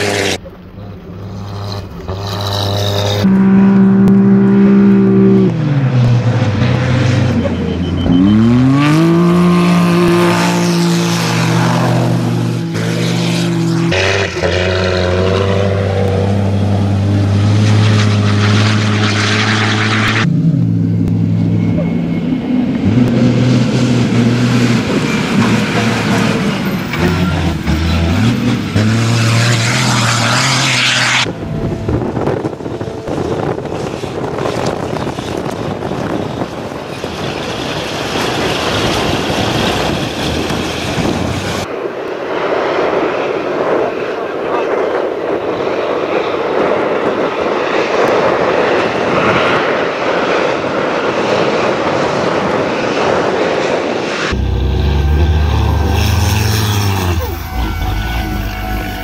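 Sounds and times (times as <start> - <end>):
diesel truck engine running hard: 5.7 - 12.7, 14.2 - 41.7, 54.3 - 59.0.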